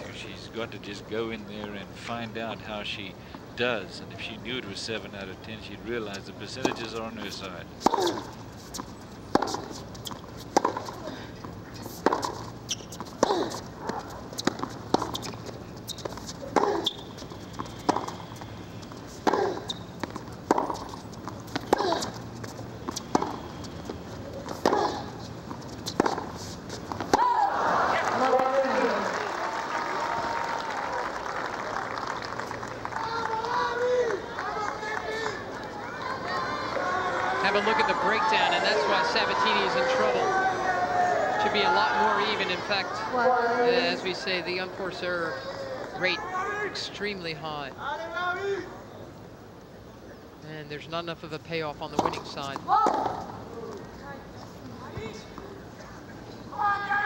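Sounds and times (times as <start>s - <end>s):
tennis ball bouncing: 6.5s - 27.4s, 37.4s - 40.2s, 51.9s - 53.8s
tennis racquet hitting ball: 6.6s - 11.0s, 11.9s - 15.4s, 16.1s - 18.2s, 19.0s - 22.2s, 22.8s - 23.5s, 24.4s - 27.4s
crowd cheering and shouting: 27.1s - 31.4s, 32.9s - 43.7s.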